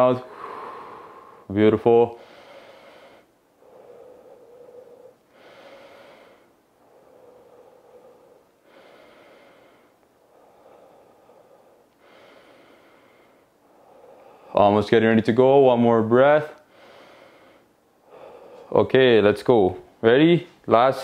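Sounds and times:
man breathing deeply: 0:00.0 - 0:14.6, 0:16.5 - 0:18.8.

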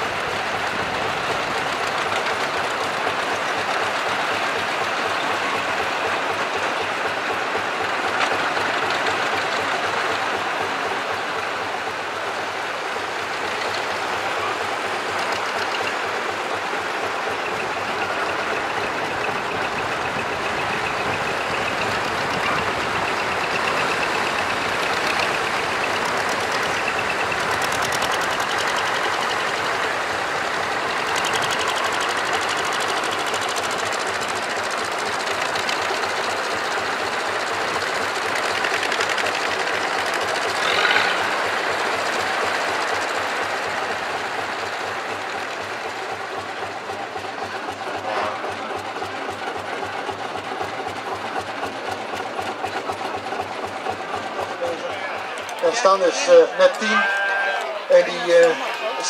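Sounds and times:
tractor engines driving past: 0:00.0 - 0:59.0.

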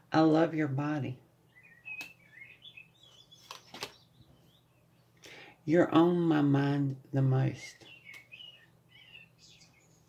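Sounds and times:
faint bird chirps: 0:01.5 - 0:05.2, 0:07.8 - 0:10.0
card set down on cards: 0:03.4 - 0:04.0.

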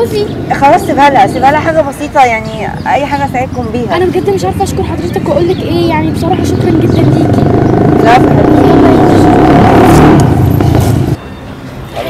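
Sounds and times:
vehicle engine rumble: 0:00.0 - 0:11.2
quiet outdoor background: 0:00.0 - 0:12.0.

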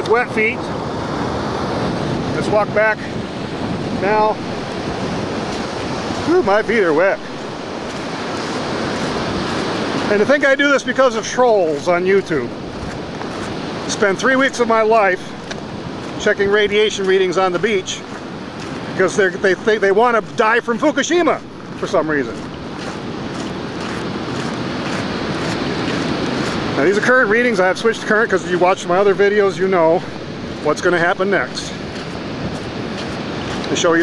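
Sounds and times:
surf washing onto beach: 0:00.0 - 0:34.0
wind buffeting microphone: 0:00.0 - 0:34.0.

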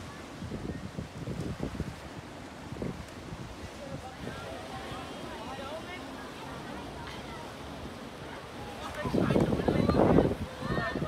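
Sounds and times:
water rumble: 0:00.0 - 0:11.0
wind: 0:00.0 - 0:11.0
group talking and calling out: 0:03.9 - 0:11.0.

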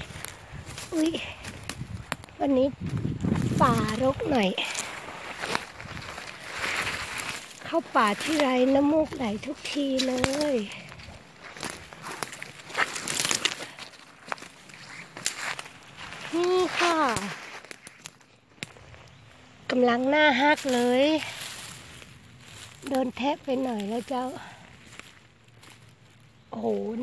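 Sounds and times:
footsteps in dry leaves: 0:00.0 - 0:27.0
woman speaking: 0:00.9 - 0:01.4, 0:02.4 - 0:02.8, 0:03.5 - 0:04.8, 0:07.6 - 0:10.8, 0:16.3 - 0:17.4, 0:19.7 - 0:21.4, 0:22.8 - 0:24.5, 0:26.5 - 0:27.0.

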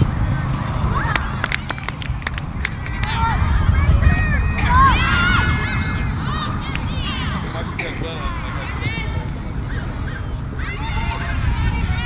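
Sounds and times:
geese honking: 0:00.0 - 0:12.0
low rumble: 0:00.0 - 0:12.0.

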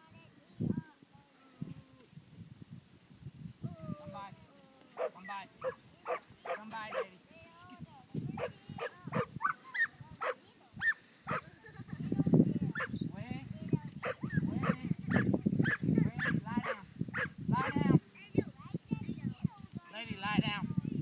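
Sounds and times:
dog barking: 0:05.0 - 0:07.1, 0:08.4 - 0:11.4, 0:14.0 - 0:17.8.

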